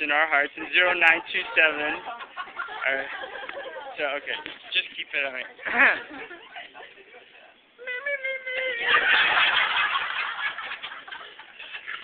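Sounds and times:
faint laughter and voices: 0.4 - 12.0.

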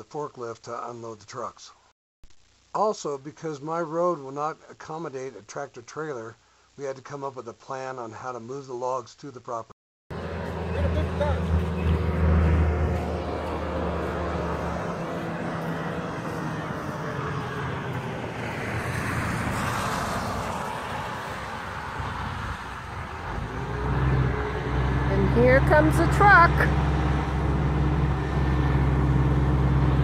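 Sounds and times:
car passing by: 10.1 - 30.0
truck engine drone: 10.1 - 30.0
tyre and road noise: 10.1 - 30.0.

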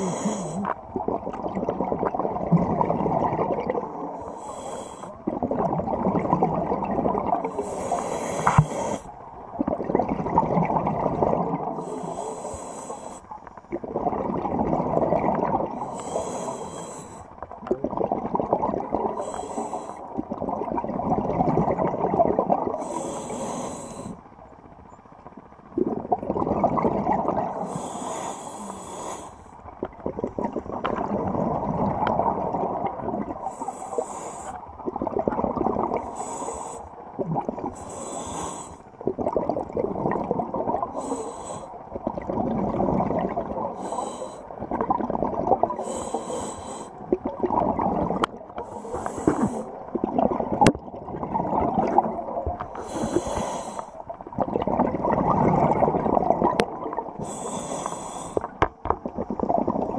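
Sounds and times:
regulator hissing inhalations: 0.0 - 0.7, 4.2 - 5.2, 7.5 - 9.1, 11.8 - 13.4, 15.8 - 17.3, 19.2 - 20.1, 22.8 - 24.2, 27.6 - 29.5, 33.5 - 34.6, 36.1 - 37.0, 37.8 - 38.8, 41.0 - 41.7, 43.8 - 44.5, 45.8 - 47.0, 48.6 - 49.8, 52.7 - 54.0, 57.2 - 58.5
exhaled bubbles rushing: 0.8 - 4.2, 5.2 - 7.6, 9.5 - 11.9, 13.7 - 15.9, 17.5 - 19.2, 20.0 - 22.9, 25.7 - 27.6, 29.7 - 33.5, 34.7 - 36.1, 37.1 - 37.8, 39.0 - 41.0, 41.9 - 43.8, 44.5 - 45.9, 47.0 - 48.6, 49.3 - 53.2, 54.2 - 57.3, 58.8 - 59.9.

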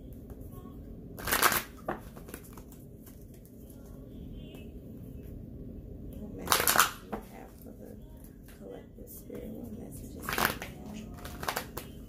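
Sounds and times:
cards riffling: 1.2 - 3.8, 10.3 - 12.0
cards tapping: 1.2 - 3.9, 10.3 - 12.0.

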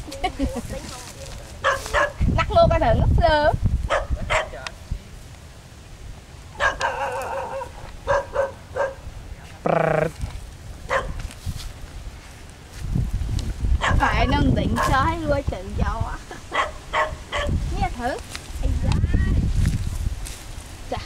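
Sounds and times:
dog barking: 1.6 - 2.2, 3.9 - 4.6, 6.6 - 9.0, 10.9 - 11.2, 13.8 - 14.9, 16.5 - 17.6.

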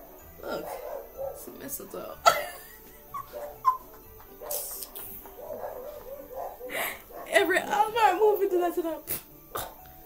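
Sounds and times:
woman's stifled laughter: 2.2 - 5.1.

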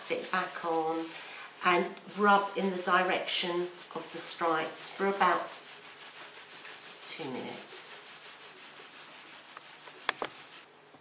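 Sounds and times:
plastic sheet rubbing on wet fleece: 0.0 - 10.7.

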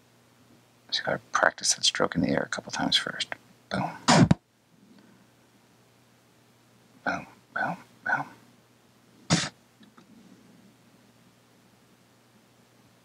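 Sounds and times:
man making wordless sounds: 0.9 - 4.4, 7.0 - 8.4.

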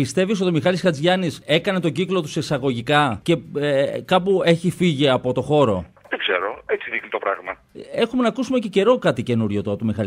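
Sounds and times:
voice over telephone line: 6.1 - 7.6.

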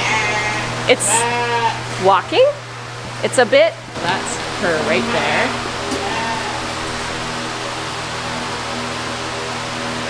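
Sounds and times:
lambs bleating: 0.0 - 1.9, 4.7 - 6.7.

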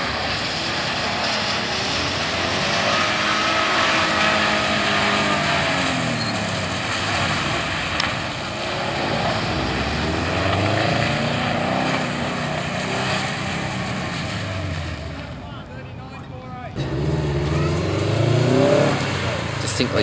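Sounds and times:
car engine revving: 0.0 - 20.0.

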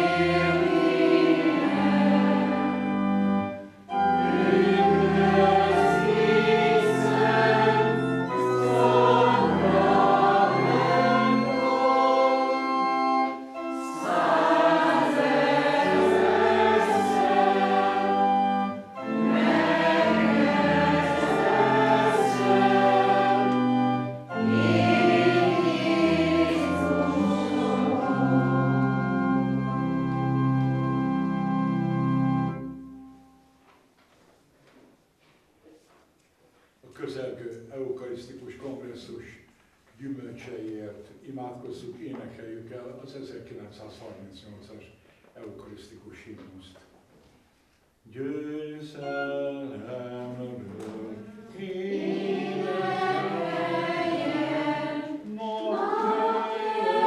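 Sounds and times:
congregation singing a hymn: 0.0 - 33.0, 48.2 - 57.0
pipe organ playing: 0.0 - 33.5, 49.0 - 57.0.

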